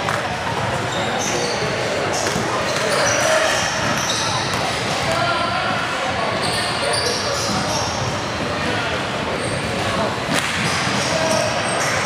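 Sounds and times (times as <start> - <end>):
echoing voices chattering: 0.0 - 12.0.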